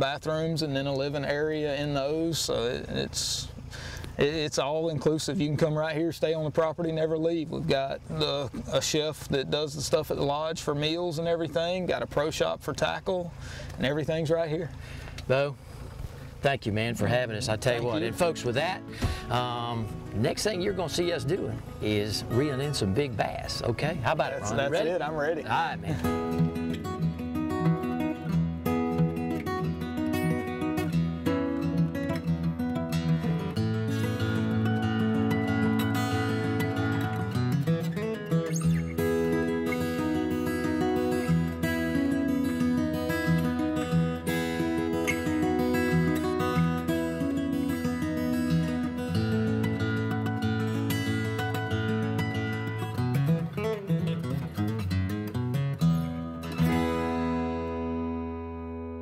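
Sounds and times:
acoustic guitar music: 0.0 - 59.0.

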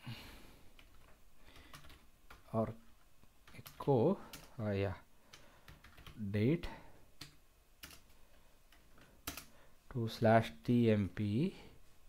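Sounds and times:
faint keyboard typing: 0.7 - 6.3, 7.2 - 9.6.

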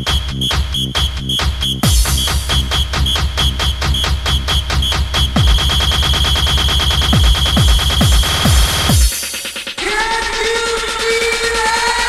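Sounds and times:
deep kick drum: 0.0 - 11.5
fast synth stabs: 0.0 - 12.0.

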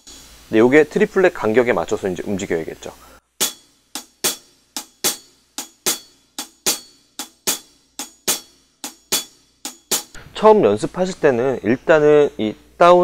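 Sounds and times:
snare drum shuffle strokes: 3.4 - 11.3.

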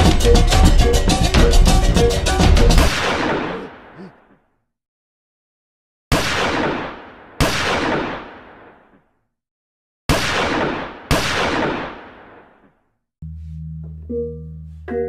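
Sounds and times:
gunshots with echoing tails: 2.8 - 4.1, 6.1 - 9.2, 10.1 - 12.8.

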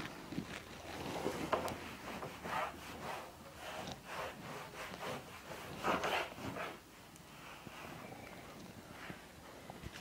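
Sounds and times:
eraser rubbing on whiteboard: 1.3 - 8.0.

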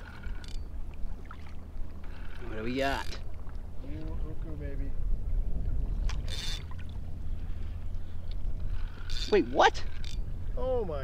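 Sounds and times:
wind and water rumble on microphone: 0.0 - 11.0.

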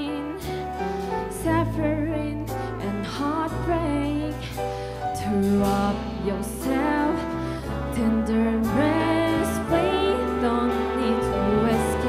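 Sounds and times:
grand piano accompaniment: 0.0 - 12.0.

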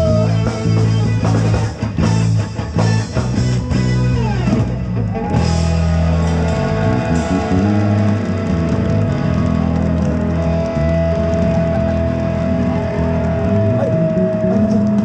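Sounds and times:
bass guitar: 0.0 - 15.0
electric guitar: 0.0 - 15.0.

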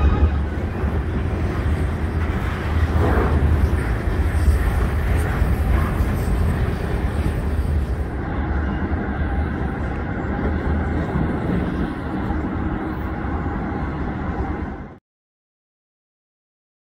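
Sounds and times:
freight train cars rolling: 0.0 - 15.0.

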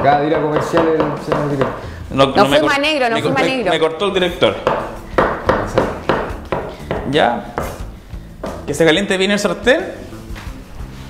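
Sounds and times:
knife chopping on wooden board: 0.0 - 1.8, 4.6 - 8.7.

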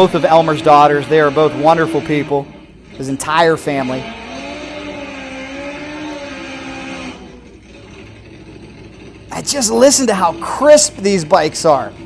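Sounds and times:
motorcycle engine revving high: 0.0 - 12.0.

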